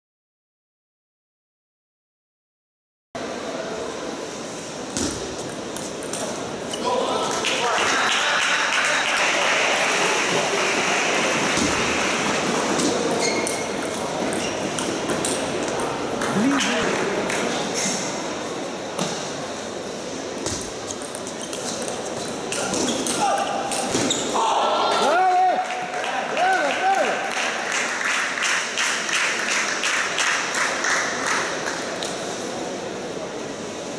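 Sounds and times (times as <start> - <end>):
spectators applauding: 7.4 - 12.5, 16.3 - 17.1, 24.9 - 31.9
people calling out in hall: 23.1 - 27.4.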